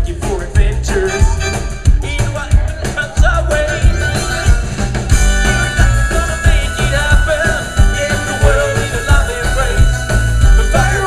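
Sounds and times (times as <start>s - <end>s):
keyboard: 0.0s - 11.0s
live rock band playing: 0.0s - 11.0s
wavering lead melody: 1.0s - 11.0s.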